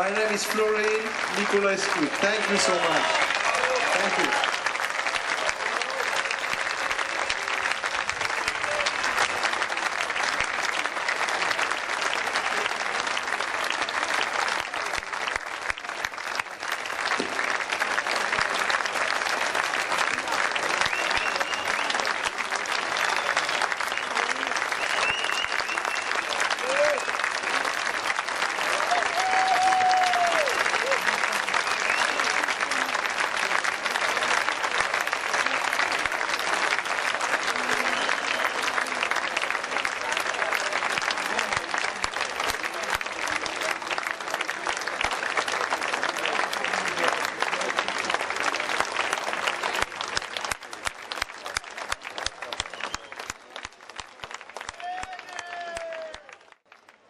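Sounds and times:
large audience applauding: 0:00.0 - 0:57.0.

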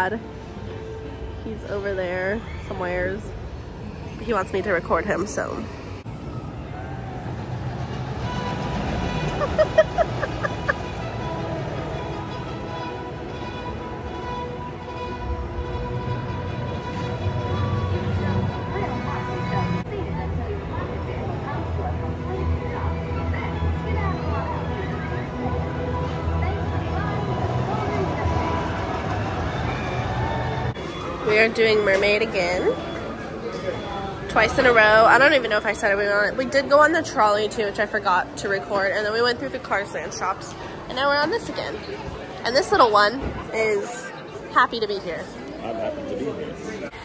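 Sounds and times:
fairground ride music: 0:05.7 - 0:35.4.

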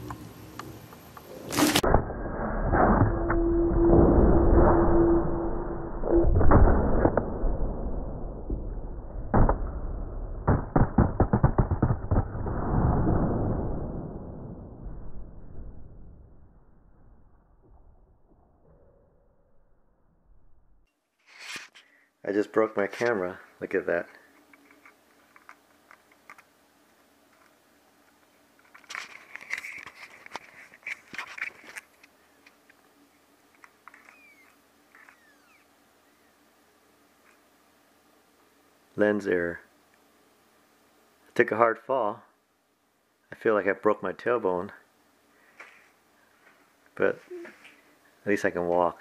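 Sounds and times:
low rumble: 0:12.0 - 0:20.9
sharp clicks of camera lens: 0:33.9 - 0:35.7.

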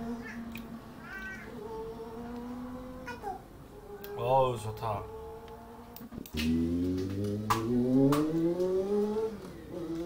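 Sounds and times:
motorcycle engine accelerating: 0:01.7 - 0:03.1, 0:05.0 - 0:10.0
sharp clicks: 0:05.4 - 0:08.7.

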